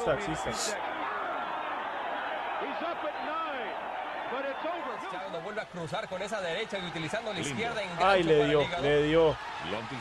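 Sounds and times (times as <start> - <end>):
men talking indistinctly: 0.0 - 0.8, 2.6 - 10.0.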